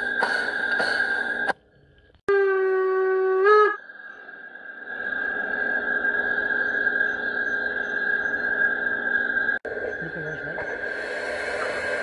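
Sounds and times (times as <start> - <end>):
high whine over soft hiss: 2.9 - 12.0.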